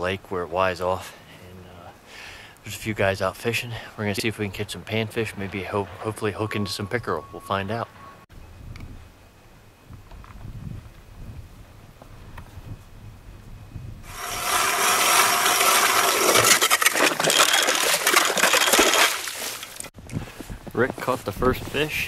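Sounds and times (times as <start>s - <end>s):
ice auger grinding: 14.1s - 19.9s.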